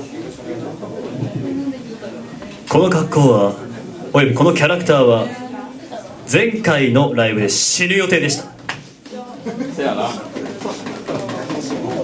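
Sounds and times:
low indistinct voices: 0.0 - 12.0.

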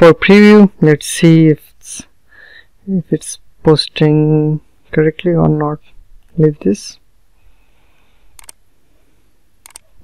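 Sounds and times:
faint room noise: 0.0 - 10.0
computer mouse clicks: 8.4 - 8.6, 9.6 - 9.9.

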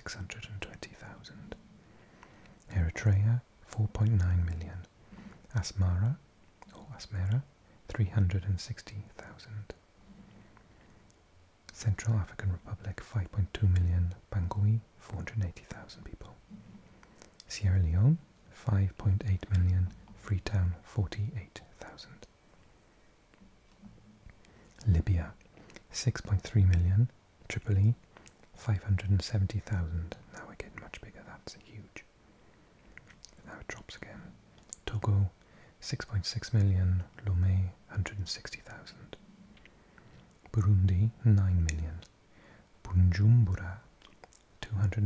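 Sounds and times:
man whispering: 0.0 - 1.7, 2.6 - 9.8, 11.6 - 16.6, 17.2 - 22.4, 24.5 - 32.2, 33.2 - 39.3, 40.4 - 45.0
faint low hum: 0.0 - 45.0.

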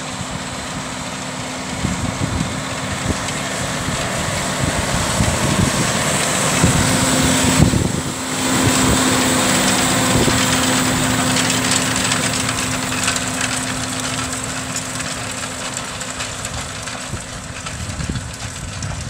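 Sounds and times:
tractor diesel engine under load: 0.0 - 19.0.

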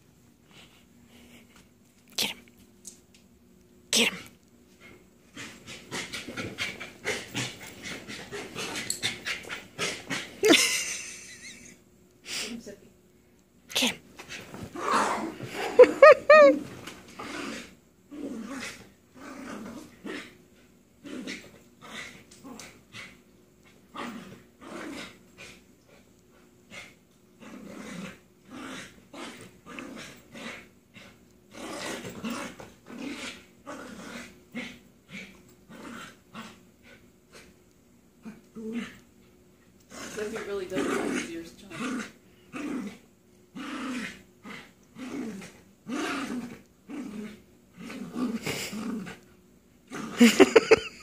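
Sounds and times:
dogs play-growling: 4.1 - 11.7, 14.2 - 51.0.

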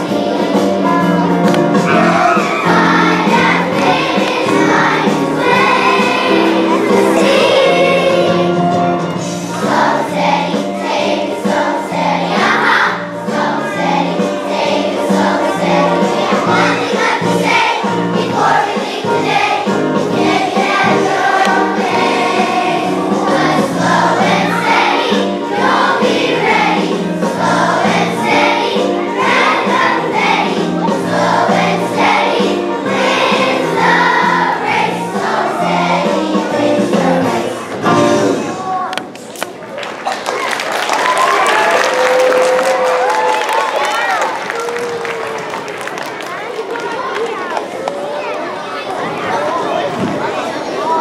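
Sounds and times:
instrumental accompaniment: 0.0 - 38.8
children's choir singing: 0.0 - 39.0, 41.4 - 51.0.

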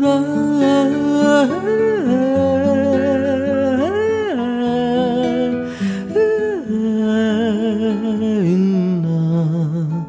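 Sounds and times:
person humming a melody: 0.0 - 10.0.

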